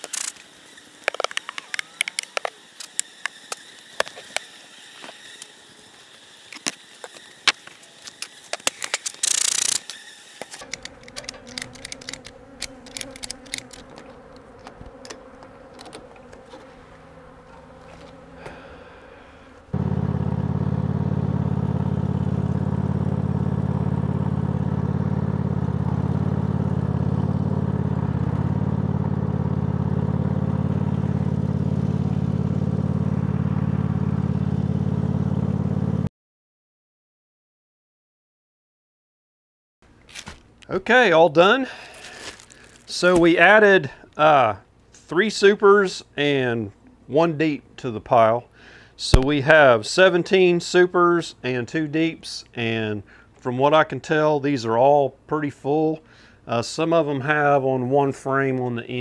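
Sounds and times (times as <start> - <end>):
lawn tractor engine running: 6.5 - 19.0, 19.7 - 36.0.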